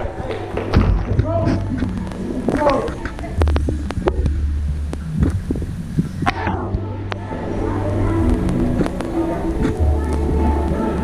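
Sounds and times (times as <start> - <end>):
background voices: 0.0 - 11.0.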